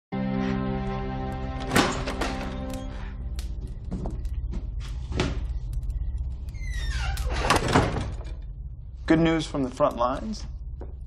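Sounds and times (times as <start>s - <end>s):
door closing and latching: 1.6s - 2.8s, 6.5s - 8.4s
door hinge creak: 6.4s - 8.4s.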